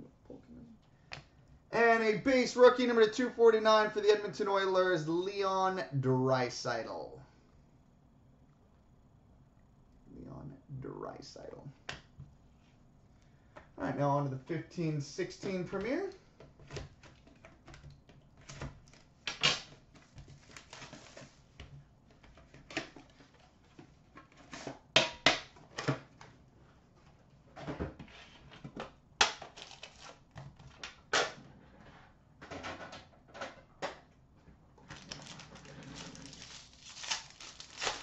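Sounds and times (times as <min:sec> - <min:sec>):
plastic wrap crinkling: 0:29.4 - 0:30.8, 0:34.8 - 0:38.0.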